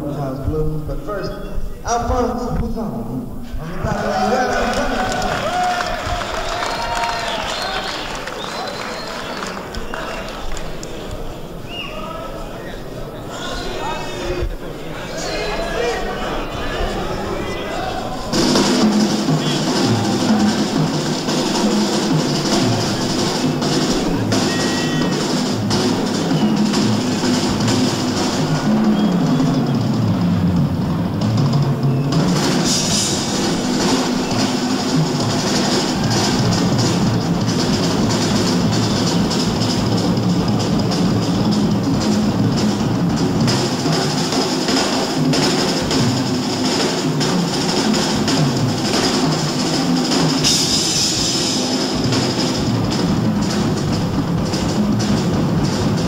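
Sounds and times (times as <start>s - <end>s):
drum kit solo: 16.8s - 56.0s.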